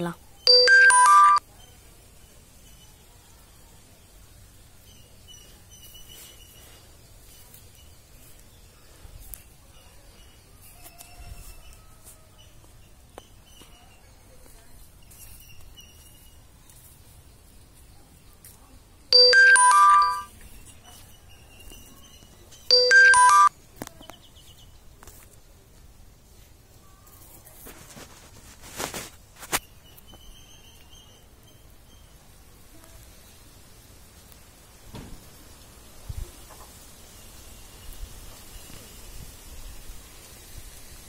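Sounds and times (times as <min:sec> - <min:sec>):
electronic ringtone melody: 0:00.5 - 0:01.4, 0:19.1 - 0:20.3, 0:22.7 - 0:23.5.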